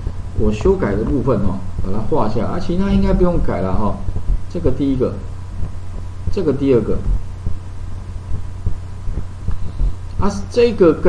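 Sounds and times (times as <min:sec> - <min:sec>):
low electrical hum: 0:00.0 - 0:11.0
soft low thumps: 0:00.0 - 0:11.0.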